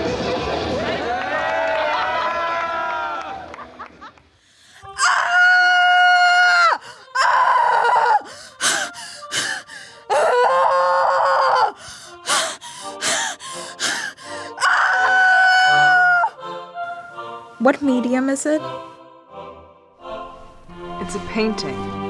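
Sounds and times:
woman screaming: 4.9s - 9.4s, 10.1s - 11.8s, 14.5s - 16.4s.

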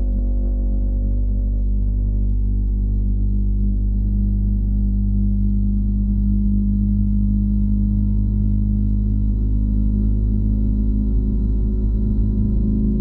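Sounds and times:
faint high whine: 0.0s - 13.0s
heat pump humming: 0.0s - 13.0s.

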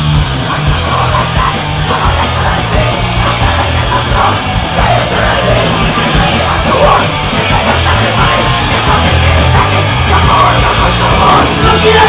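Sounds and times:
punk rock band playing: 0.0s - 12.0s
shouted vocals: 0.6s - 12.0s.

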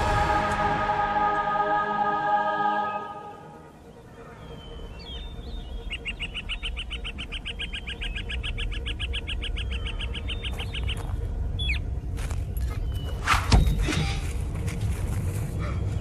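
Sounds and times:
low rumble: 8.0s - 16.0s.

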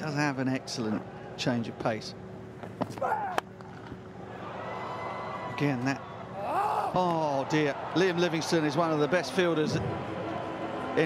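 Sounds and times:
stadium crowd noise: 4.2s - 11.0s.

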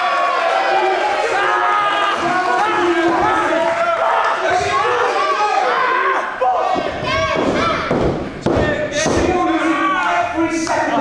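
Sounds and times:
people shouting: 0.0s - 11.0s.

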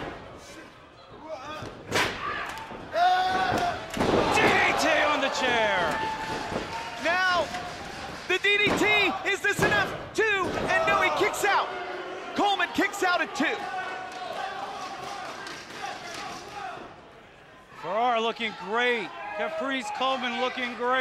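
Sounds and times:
loud shouted voices: 2.2s - 9.8s, 10.6s - 17.0s.

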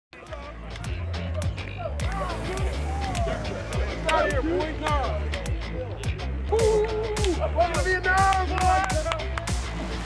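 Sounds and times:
music with deep bass beat: 0.2s - 10.0s.

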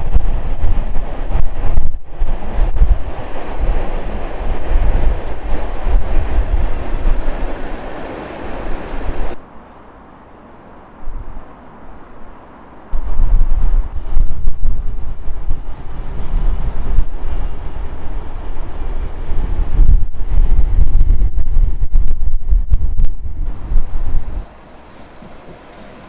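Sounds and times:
wind buffeting microphone: 0.0s - 9.4s, 11.0s - 26.0s
train crossing rail bridge: 0.0s - 26.0s.

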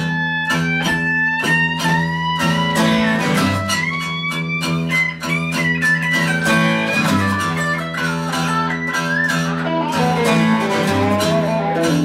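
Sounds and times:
acoustic guitar strumming: 0.0s - 12.0s
electric guitar lead with bends: 0.0s - 12.0s.

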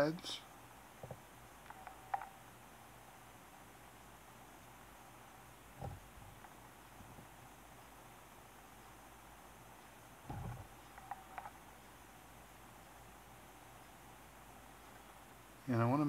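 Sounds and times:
soft low bump: 5.8s - 6.4s, 10.2s - 10.7s.

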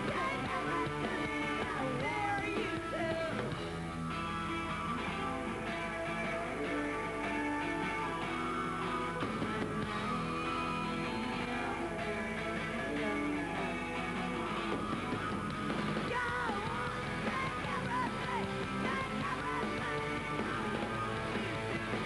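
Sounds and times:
rock band playing: 0.0s - 22.0s.

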